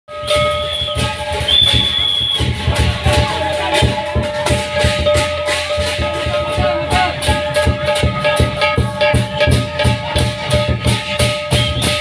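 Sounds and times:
high shrill tone: 0:00.1 - 0:10.5
cymbals clashing: 0:00.1 - 0:12.0
drums beating: 0:00.1 - 0:12.0.

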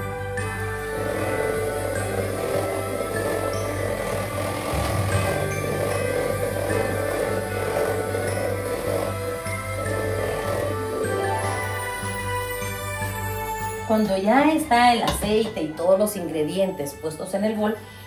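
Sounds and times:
electric hand mixer whirring: 0:00.0 - 0:14.5.

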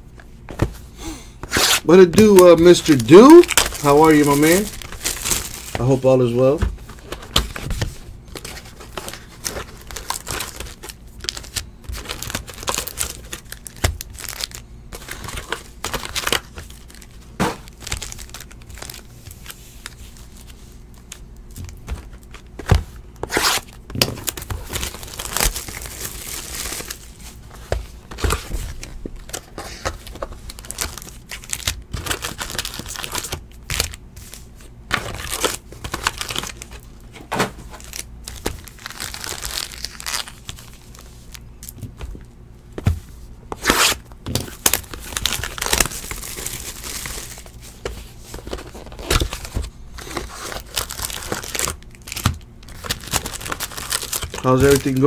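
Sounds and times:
foil packs crinkling and tearing: 0:01.4 - 0:36.9, 0:37.6 - 0:42.2, 0:43.5 - 0:55.0.

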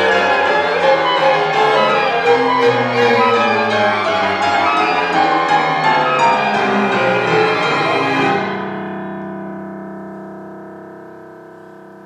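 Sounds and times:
chamber ensemble chord with piano: 0:00.0 - 0:12.0.

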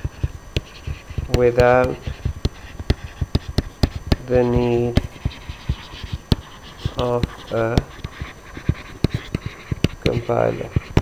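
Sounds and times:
stylus scratching on screen: 0:00.0 - 0:11.0
stylus tapping on tablet screen: 0:00.0 - 0:11.0.

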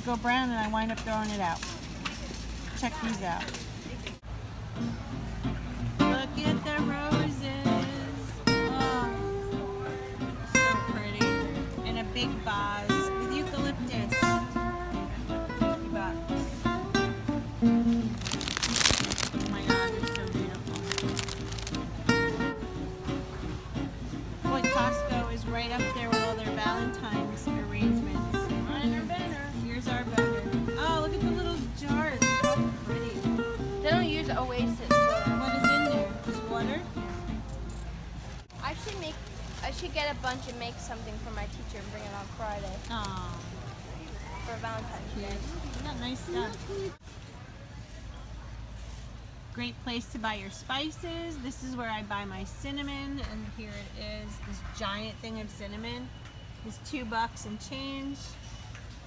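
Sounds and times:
plucked strings music: 0:04.8 - 0:37.5.

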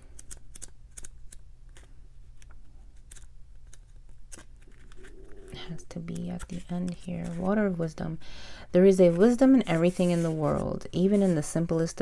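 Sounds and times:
paper pages turning: 0:00.0 - 0:07.8, 0:08.9 - 0:11.9.

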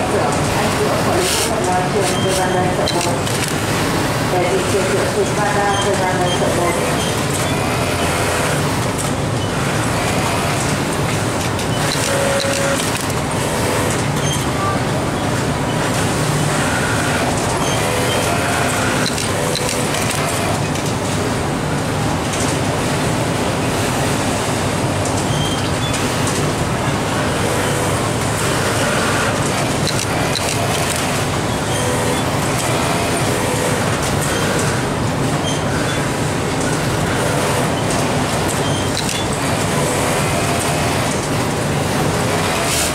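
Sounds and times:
industrial sewing machines running: 0:00.0 - 0:42.9
scattered clicks: 0:01.2 - 0:03.6, 0:10.5 - 0:13.2, 0:17.3 - 0:21.0, 0:29.2 - 0:31.2, 0:37.9 - 0:39.3.

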